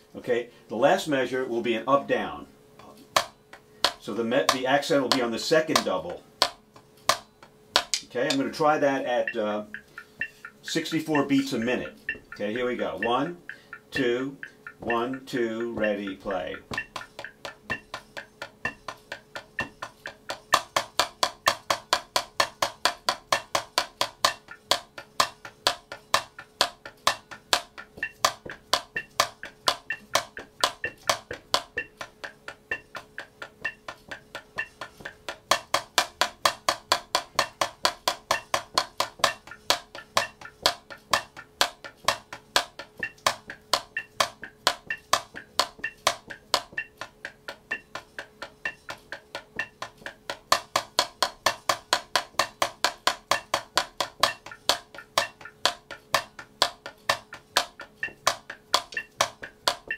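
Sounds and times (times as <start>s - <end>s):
faint steady hum: 0.0s - 59.9s
drumsticks on practice pad: 2.2s - 59.9s.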